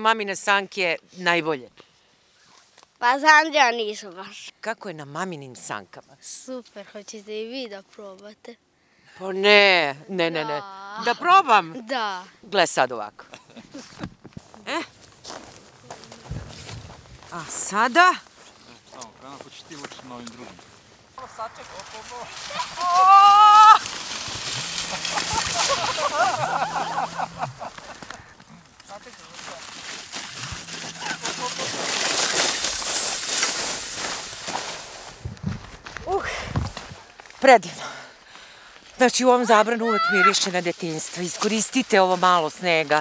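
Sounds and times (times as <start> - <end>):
footsteps crunching on snow: 13.8 - 37.5, 38.7 - 43.0.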